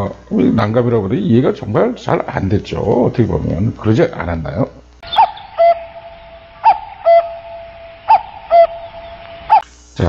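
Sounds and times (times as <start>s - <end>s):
two-note falling hoot: 5.0s - 9.6s
steady held tone: 5.0s - 10.0s.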